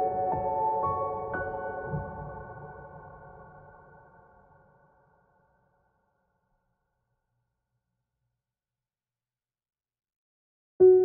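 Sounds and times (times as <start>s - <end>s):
soft slow piano music: 0.0s - 4.4s.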